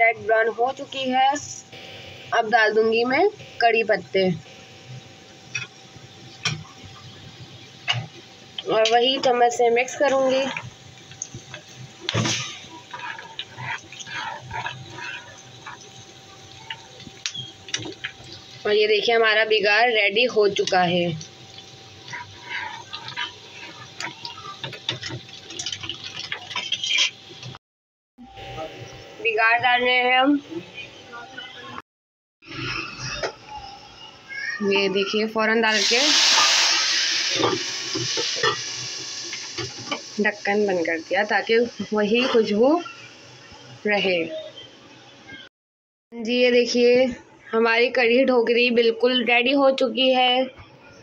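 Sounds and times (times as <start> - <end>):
onions sizzling in hot oil: 2.2 - 27.6, 35.7 - 44.3
spoon stirring and scraping: 8.8 - 19.3, 20.1 - 27.6, 37.4 - 38.7.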